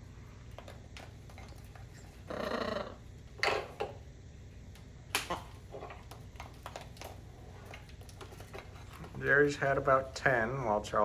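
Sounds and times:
parrot call: 0:02.2 - 0:03.1.

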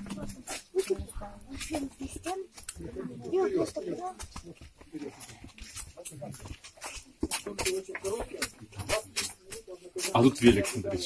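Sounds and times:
footsteps on stone floor: 0:00.0 - 0:11.0
indistinct voices: 0:00.0 - 0:11.0.

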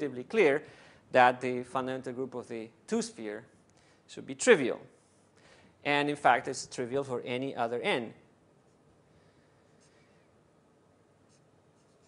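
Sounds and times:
writing scratching on board: 0:11.3 - 0:12.0.

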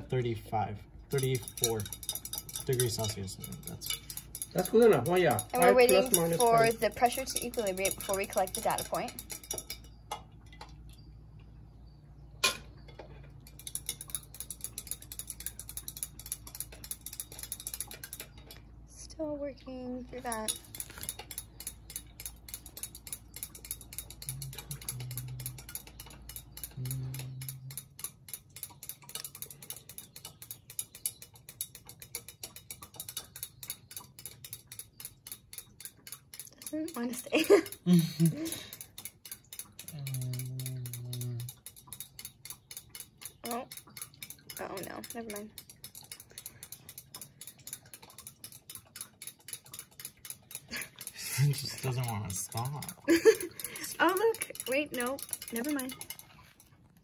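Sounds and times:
low hum: 0:00.0 - 0:29.7, 0:39.9 - 0:41.6
rapid mechanical ticking: 0:00.0 - 0:57.0.

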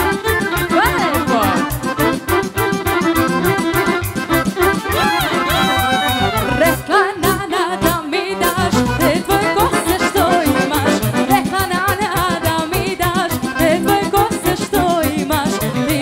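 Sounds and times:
accordion: 0:00.0 - 0:16.0
electric violin melody: 0:00.0 - 0:16.0
folk band music: 0:00.0 - 0:16.0.

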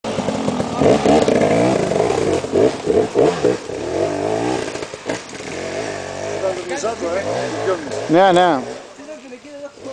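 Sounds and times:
dirt bike engine revving: 0:00.1 - 0:09.0.

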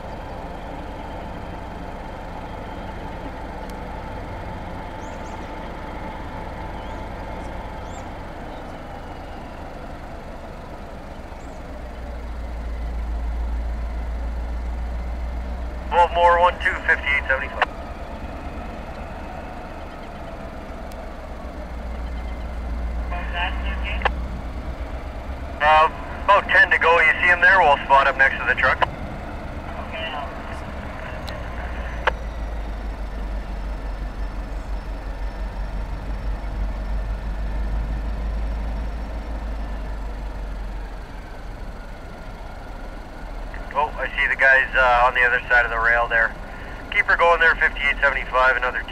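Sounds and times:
diesel locomotives rumbling: 0:00.0 - 0:48.9
tinny radio chatter: 0:15.9 - 0:17.8, 0:23.0 - 0:24.2, 0:25.6 - 0:28.9, 0:29.6 - 0:32.2, 0:43.5 - 0:48.9.

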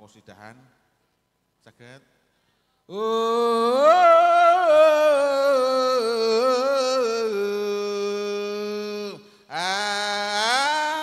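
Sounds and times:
man singing into a microphone: 0:02.9 - 0:11.0.

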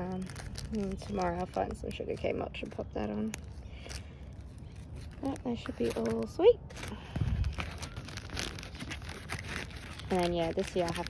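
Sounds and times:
rubber glove rustling and crackling: 0:00.0 - 0:11.0.

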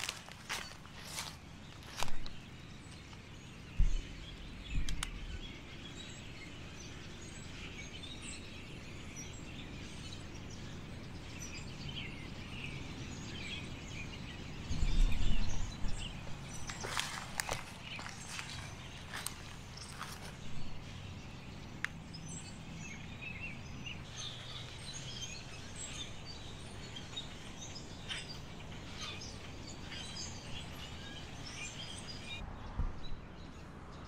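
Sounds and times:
footsteps in dry leaves: 0:00.0 - 0:02.4, 0:15.9 - 0:20.9
small birds chirping: 0:00.0 - 0:34.0
steady outdoor hiss: 0:00.0 - 0:34.0.

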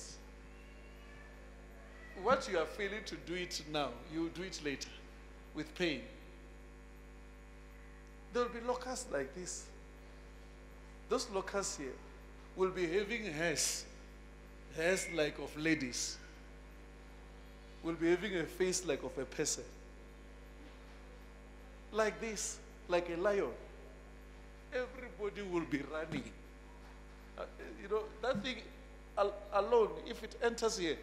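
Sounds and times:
low electrical mains hum: 0:00.0 - 0:31.0
man speaking: 0:02.2 - 0:06.2, 0:08.3 - 0:09.7, 0:11.1 - 0:12.0, 0:12.6 - 0:13.9, 0:14.8 - 0:16.2, 0:17.8 - 0:19.7, 0:21.9 - 0:23.7, 0:24.7 - 0:26.4, 0:27.4 - 0:31.0.

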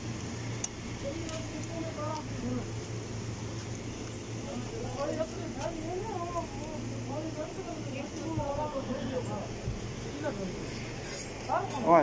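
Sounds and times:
steady low hum: 0:00.0 - 0:12.0
men talking indistinctly: 0:04.2 - 0:12.0.

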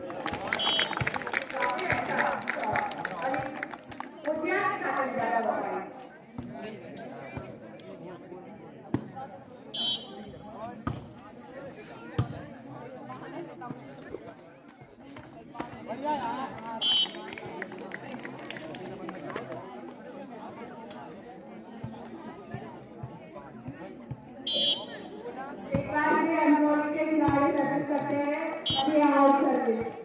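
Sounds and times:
voices chattering: 0:00.0 - 0:30.0
referee whistle blasts: 0:00.6 - 0:01.0, 0:09.7 - 0:10.4, 0:16.8 - 0:17.2, 0:24.5 - 0:25.1, 0:28.7 - 0:29.0.

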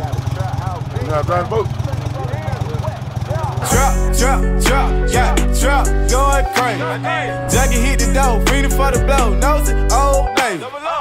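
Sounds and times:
boat motor idling: 0:00.0 - 0:10.3
person rapping: 0:03.4 - 0:11.0
hip-hop beat with heavy bass: 0:03.5 - 0:11.0.

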